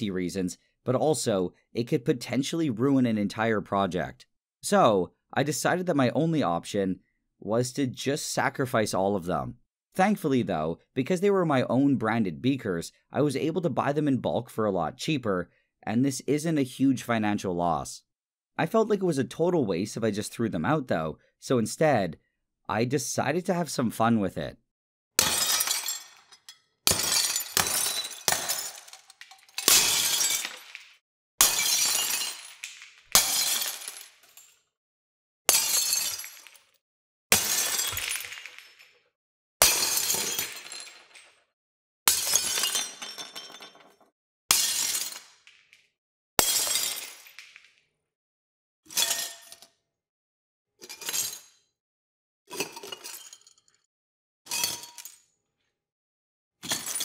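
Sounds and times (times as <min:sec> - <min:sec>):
glass beakers shattering: 0:25.2 - 0:34.6, 0:35.5 - 0:36.8, 0:37.4 - 0:39.0, 0:39.6 - 0:41.5, 0:42.1 - 0:45.8, 0:46.4 - 0:47.8, 0:48.9 - 0:49.7, 0:50.9 - 0:51.6, 0:52.5 - 0:53.8, 0:54.5 - 0:55.2, 0:56.6 - 0:57.0.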